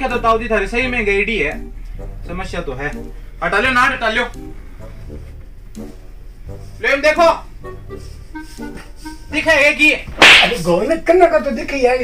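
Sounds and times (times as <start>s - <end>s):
slap to face: 10.2s - 10.7s.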